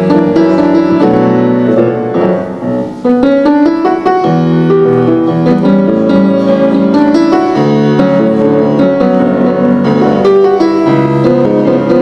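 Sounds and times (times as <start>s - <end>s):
grand piano playing: 0.0s - 12.0s.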